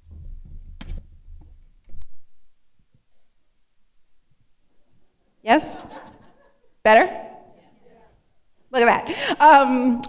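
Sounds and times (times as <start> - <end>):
microphone knocks and clicks: 0.0 - 2.3.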